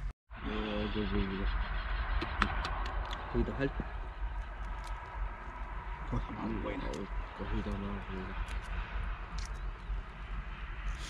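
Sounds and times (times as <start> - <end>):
low wind rumble on microphone: 0.3 - 11.0
man talking: 0.4 - 1.5, 3.3 - 3.9, 6.1 - 8.4.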